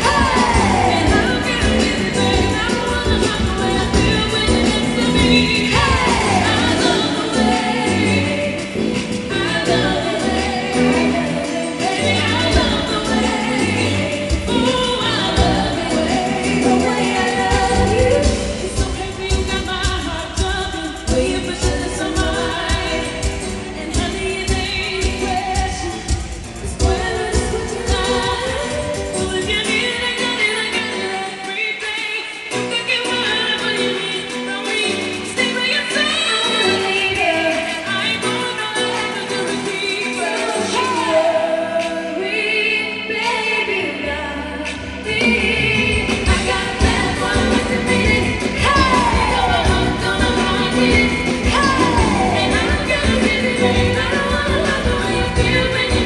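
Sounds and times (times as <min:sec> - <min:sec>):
band playing pop music: 0:00.0 - 0:56.0
woman singing: 0:00.0 - 0:56.0.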